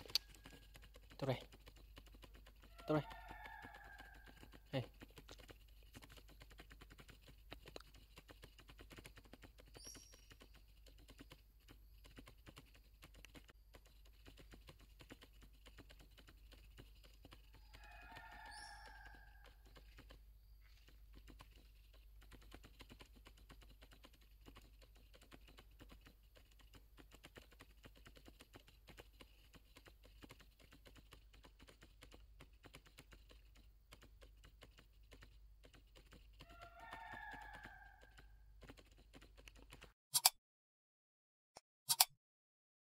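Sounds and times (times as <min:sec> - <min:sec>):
faint clicking: 0:00.0 - 0:39.9.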